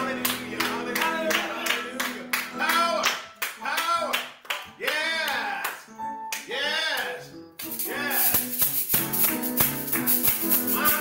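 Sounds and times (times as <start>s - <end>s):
people clapping in rhythm: 0.0s - 11.0s.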